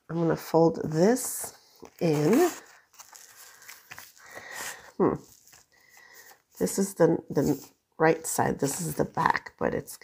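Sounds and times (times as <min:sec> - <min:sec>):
wallpaper rustling and scraping: 0:01.0 - 0:07.8.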